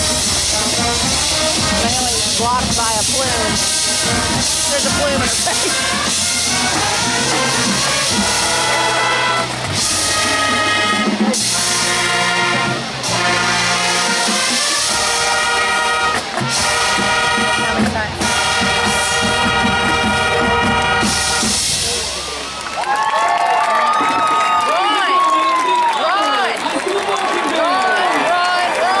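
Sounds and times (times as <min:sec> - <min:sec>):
crowd cheering and yelling: 0:00.0 - 0:29.0
marching band playing: 0:00.0 - 0:29.0.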